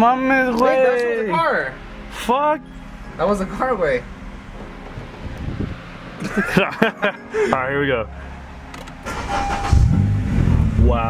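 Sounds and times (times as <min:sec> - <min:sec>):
car engine starting up: 0:08.2 - 0:11.0.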